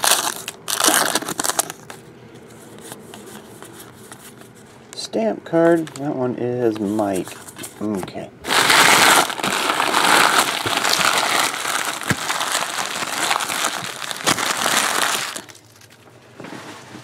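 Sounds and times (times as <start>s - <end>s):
wrappers crinkling: 0.0s - 2.0s, 8.5s - 16.0s.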